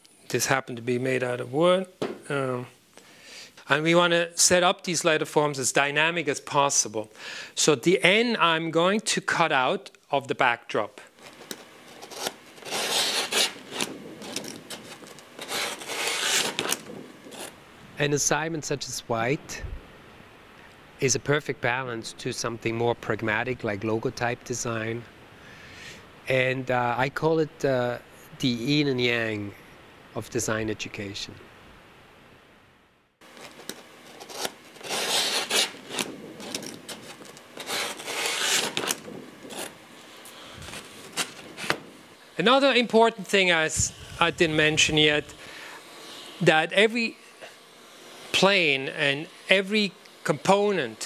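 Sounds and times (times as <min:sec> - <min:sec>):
rasping scrapes of cutting: 0:11.2 - 0:17.6, 0:33.3 - 0:41.8.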